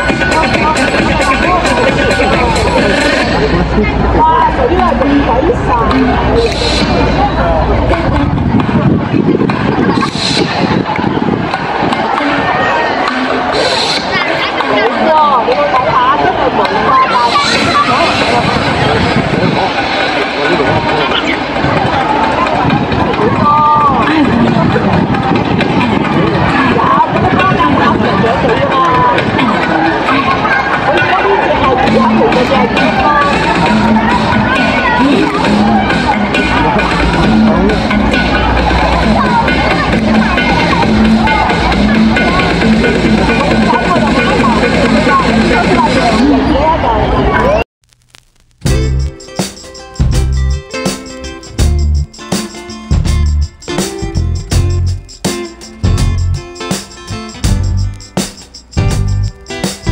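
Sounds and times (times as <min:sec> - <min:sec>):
music through small speaker: 0:00.0 - 0:46.6, 0:48.6 - 0:59.9
people chattering loudly: 0:00.0 - 0:47.6, 0:48.7 - 0:59.9
people talking: 0:00.0 - 0:47.7
loud background noise: 0:00.0 - 0:59.9.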